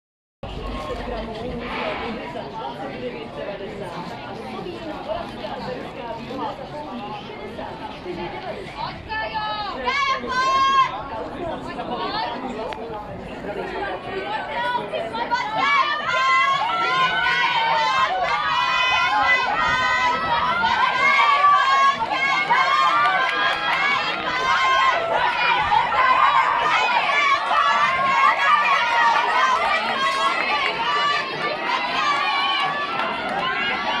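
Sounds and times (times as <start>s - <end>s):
crowd chatter: 0.4s - 34.0s
spectators calling out: 14.2s - 34.0s.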